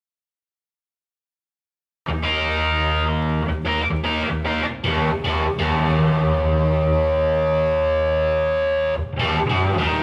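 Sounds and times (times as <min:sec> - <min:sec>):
electric guitar chord ringing: 0:02.1 - 0:10.0.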